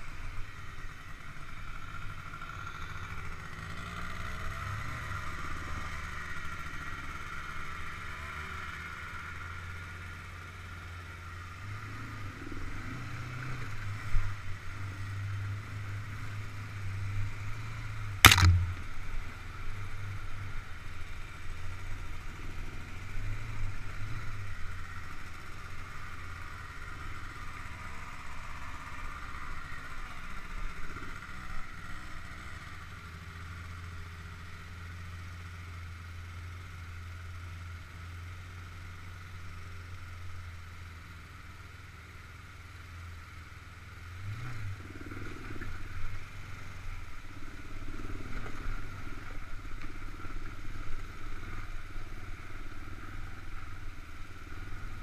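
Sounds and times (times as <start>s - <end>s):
quad bike engine running: 0.0s - 55.0s
sharp knocks: 18.2s - 18.8s.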